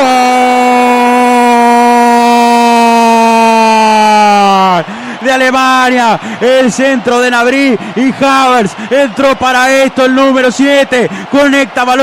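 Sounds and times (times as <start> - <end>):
commentator shouting gol: 0.0 - 12.0.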